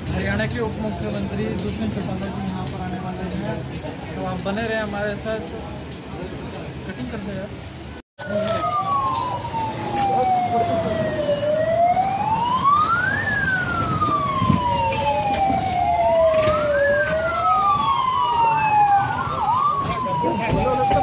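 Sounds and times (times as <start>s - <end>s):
vehicle sirens wailing: 8.2s - 21.0s.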